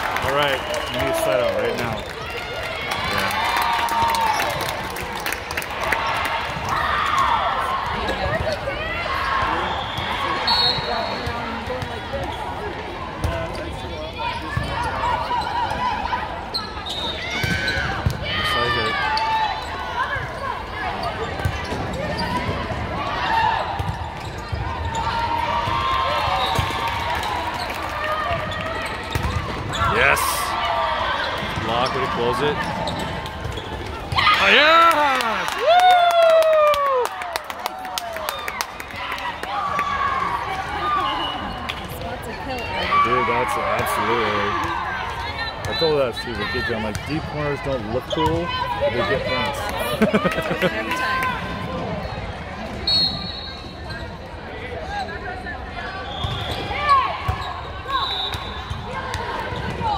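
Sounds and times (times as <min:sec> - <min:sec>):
players shouting and cheering: 0:00.0 - 0:53.2, 0:54.4 - 0:59.9.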